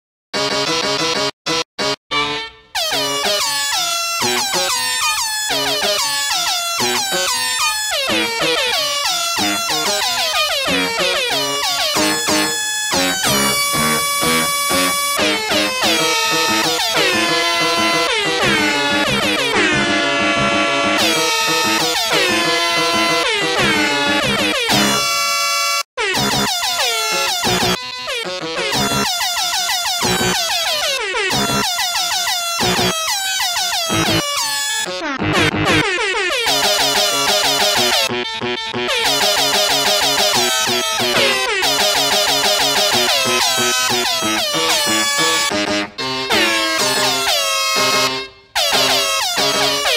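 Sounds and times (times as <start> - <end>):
backing track music: 0.4 - 25.1, 33.8 - 35.9, 36.6 - 49.9
air horn honks melody: 0.4 - 49.9.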